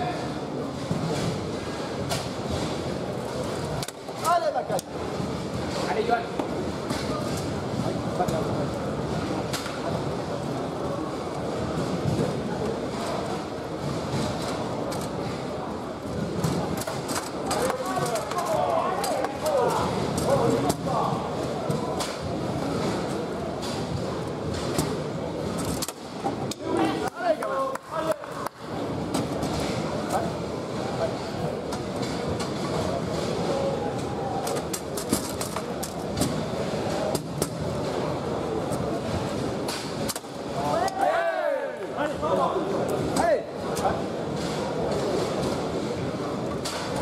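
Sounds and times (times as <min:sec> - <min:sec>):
murmur of indistinct voices: 0:00.0 - 0:47.0.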